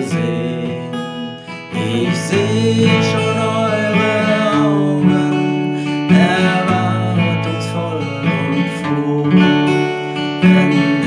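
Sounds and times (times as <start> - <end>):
acoustic guitar strumming chords: 0.0 - 11.0
man singing: 0.0 - 11.0.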